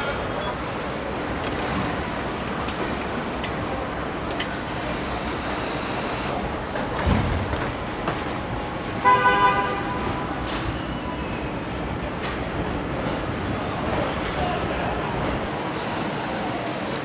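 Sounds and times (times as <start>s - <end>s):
factory hum: 0.0s - 17.0s.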